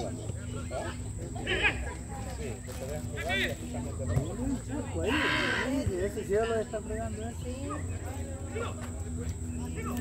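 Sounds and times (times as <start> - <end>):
distant shouts and calls: 5.0 - 8.8.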